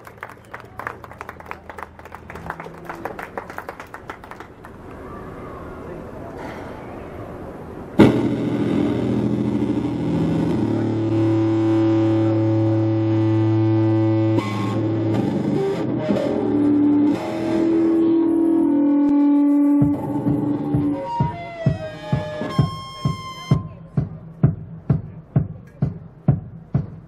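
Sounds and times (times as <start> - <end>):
electric bass guitar with effects: 8.0 - 23.7.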